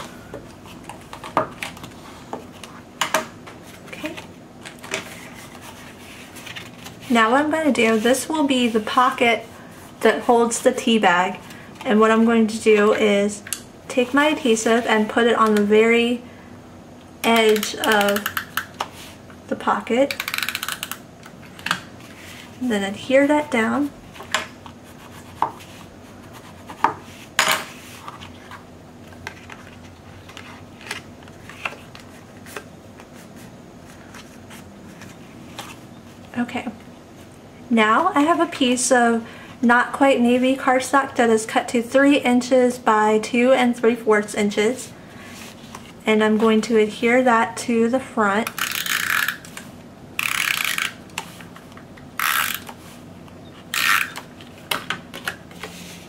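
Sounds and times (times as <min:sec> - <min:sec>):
card folding rustles: 0:03.5 - 0:09.1, 0:24.1 - 0:36.2
tape dispenser ratcheting whir: 0:17.2 - 0:18.7, 0:20.1 - 0:21.0, 0:48.5 - 0:49.6, 0:50.2 - 0:51.0, 0:52.1 - 0:52.8, 0:53.7 - 0:54.3.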